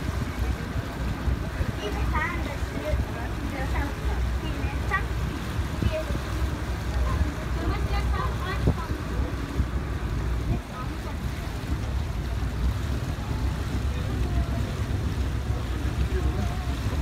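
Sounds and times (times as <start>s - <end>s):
boat engine rumbling: 0.0s - 17.0s
people talking indistinctly: 0.0s - 17.0s.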